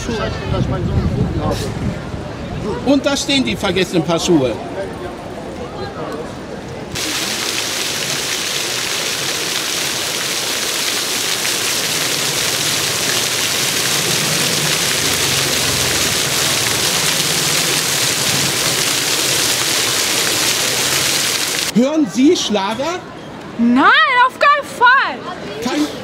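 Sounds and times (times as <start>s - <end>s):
fountain water jets splashing: 6.9s - 21.7s.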